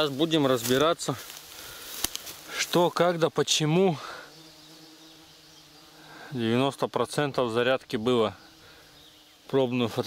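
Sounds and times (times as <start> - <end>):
flying insect buzzing: 0.0 - 10.0.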